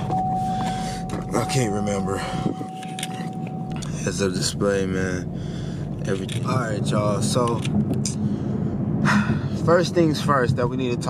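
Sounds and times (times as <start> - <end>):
thin high tone: 0.0 - 4.6
car engine idling: 0.0 - 11.0.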